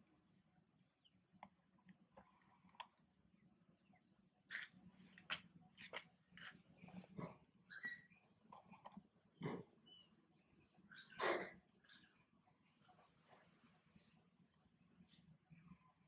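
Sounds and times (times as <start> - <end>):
monkey high squeaks: 7.7 - 8.2.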